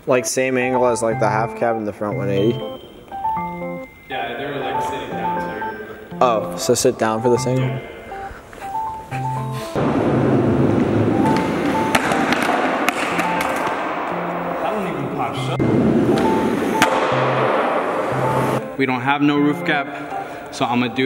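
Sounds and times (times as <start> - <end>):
background music: 0.0 - 21.0
skateboard clacks: 9.8 - 14.1
skateboard wheels rolling on concrete: 9.8 - 14.1, 15.7 - 18.6.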